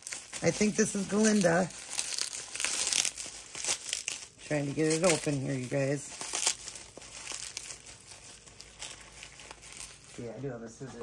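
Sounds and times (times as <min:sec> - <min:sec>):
packaging crinkling: 0:00.0 - 0:11.0.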